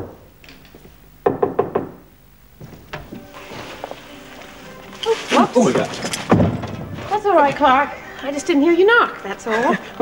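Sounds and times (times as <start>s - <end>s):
knocking on a door: 1.2s - 2.0s.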